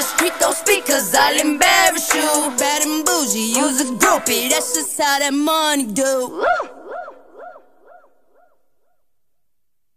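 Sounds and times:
echoing rapped word: 0.0s - 7.4s.

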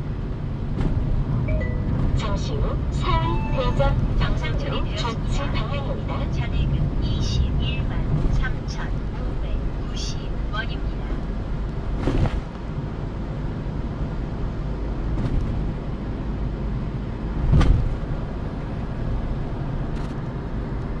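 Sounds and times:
car road noise from inside: 0.0s - 21.0s.

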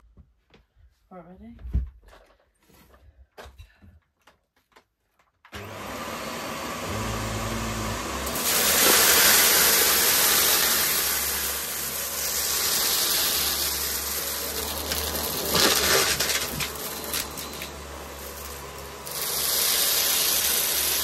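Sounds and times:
vacuum cleaner running over carpet: 5.6s - 21.0s.

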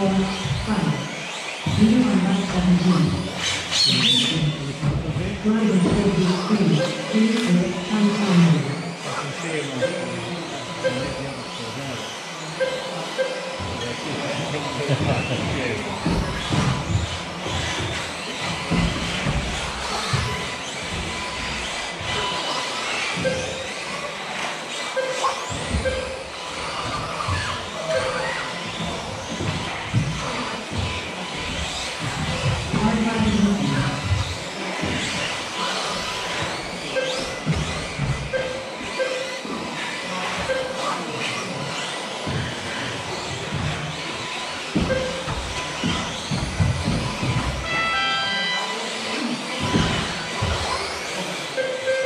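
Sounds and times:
rc car motor whine: 0.0s - 52.0s
short beeps: 12.6s - 13.6s, 38.2s - 39.4s, 40.4s - 40.8s, 44.8s - 45.4s, 51.6s - 52.0s.

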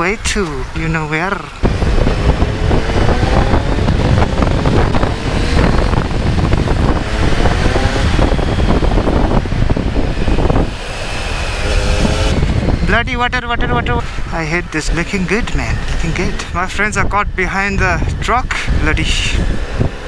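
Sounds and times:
wind buffeting microphone: 0.0s - 20.0s
motorcycle engine accelerating: 1.5s - 17.4s.

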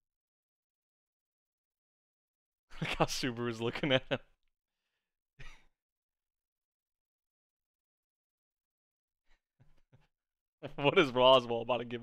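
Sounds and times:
man speaking: 10.6s - 12.0s.

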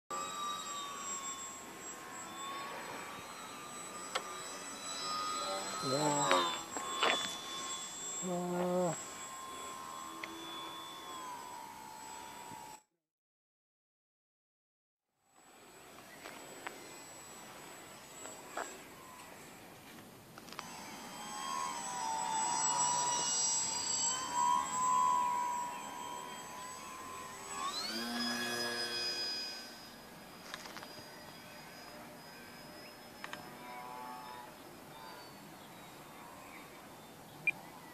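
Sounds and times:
model plane motor whining: 0.1s - 12.9s, 15.2s - 37.9s.

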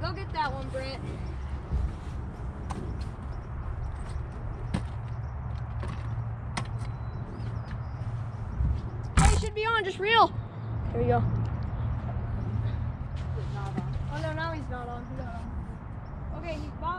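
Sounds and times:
low outdoor rumble: 0.0s - 16.9s
loud thump: 9.2s - 9.6s.

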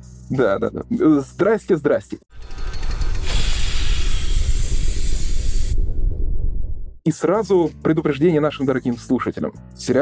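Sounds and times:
deep rumble: 2.4s - 7.0s
steam-like hiss: 3.2s - 5.9s.

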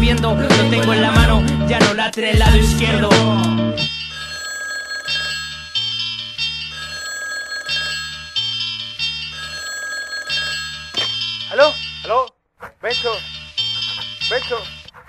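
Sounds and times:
phone ringtone tune: 2.8s - 12.2s, 12.9s - 14.9s.

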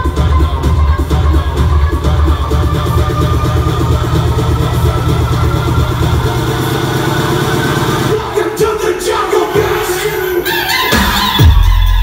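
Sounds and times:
bass-heavy house dance music: 0.0s - 12.0s.

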